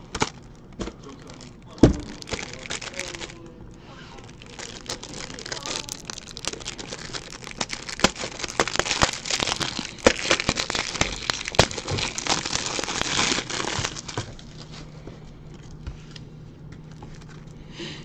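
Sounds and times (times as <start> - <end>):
plastic shrink wrap crinkling: 0.2 - 3.4, 4.2 - 15.8.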